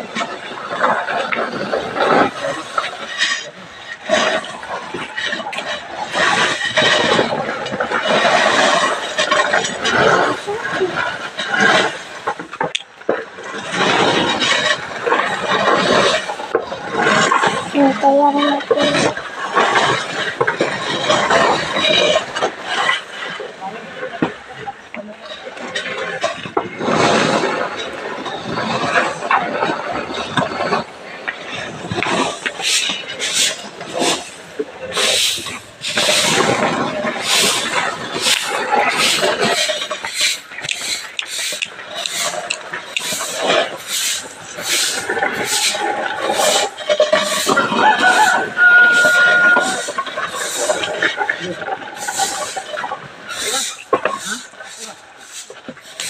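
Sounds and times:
grain scraping on concrete: 0.1 - 23.4, 31.4 - 56.0.

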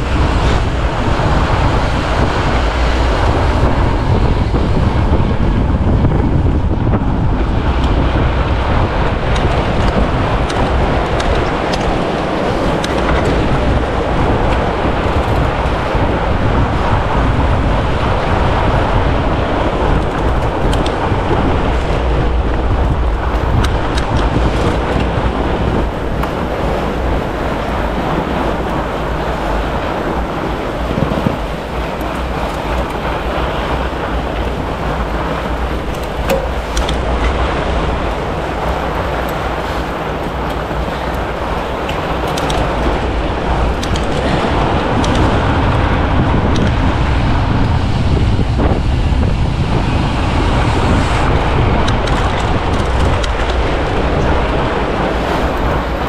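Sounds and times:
bike tyres rolling on snow: 0.0 - 56.0
wind on microphone: 0.0 - 56.0.

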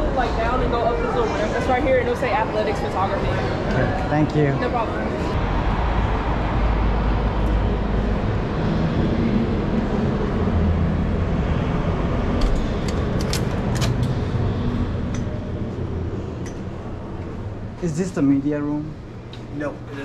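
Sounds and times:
loud low rumble: 5.3 - 18.0.

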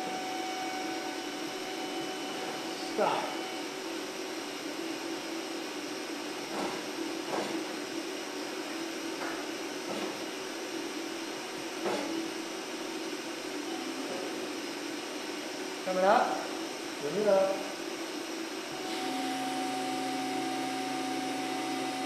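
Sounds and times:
machinery hum: 0.0 - 22.0.

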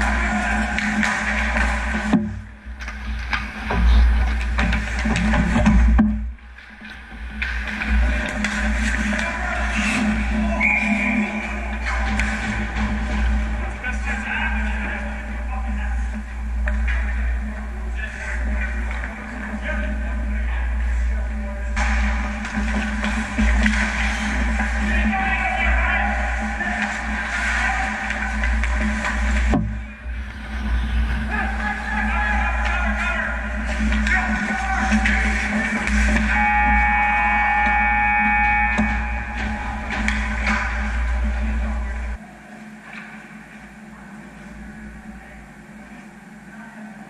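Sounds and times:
hockey sticks and puck clacking: 0.0 - 15.2, 16.1 - 20.3, 21.8 - 42.2
low rink hum: 0.0 - 47.0
skates scraping on ice: 6.6 - 14.2, 21.8 - 36.8
high tone: 36.1 - 42.2.

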